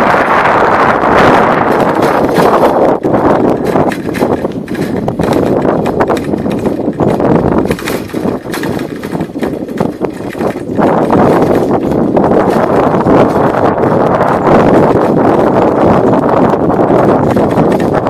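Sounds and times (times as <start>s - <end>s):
dense rushing noise: 0.0s - 18.0s
vehicle rattling on rough lane: 0.0s - 18.0s.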